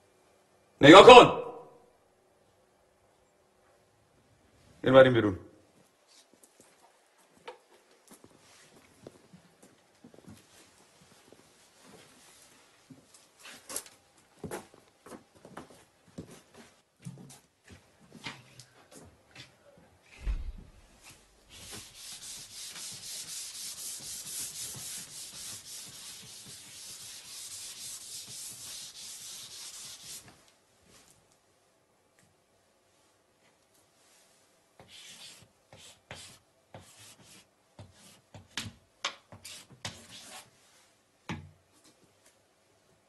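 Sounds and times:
eraser scrubbing blackboard: 21.5 - 30.3, 34.8 - 38.3.

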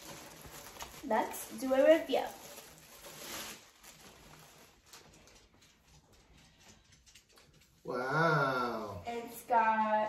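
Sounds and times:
plastic bag rustling and crinkling: 0.0 - 6.5.

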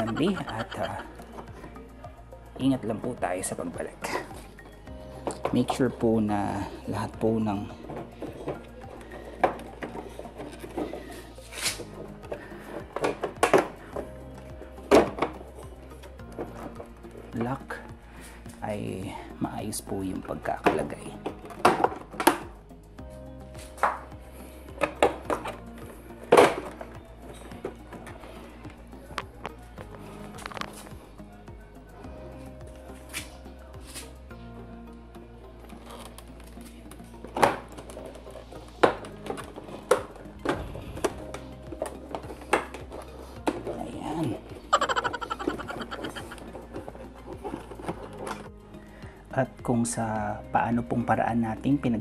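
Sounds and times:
background music: 0.0 - 52.0.

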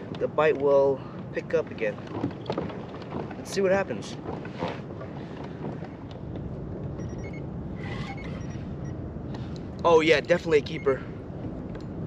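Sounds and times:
water around kayak: 0.0 - 8.7
wind on microphone: 0.0 - 12.0.

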